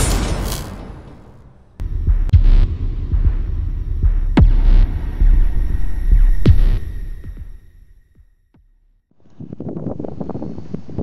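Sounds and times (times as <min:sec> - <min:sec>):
sharp hits: 0:00.0 - 0:08.3
deep rumbling throb: 0:01.8 - 0:10.2.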